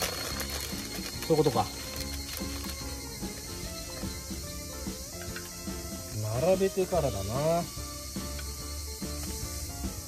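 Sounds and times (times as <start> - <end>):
plastic packaging crinkling: 0.0 - 2.9
background music: 0.0 - 10.0.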